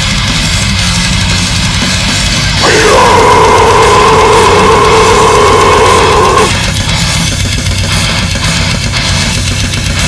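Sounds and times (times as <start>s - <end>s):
death metal drums: 0.0s - 10.0s.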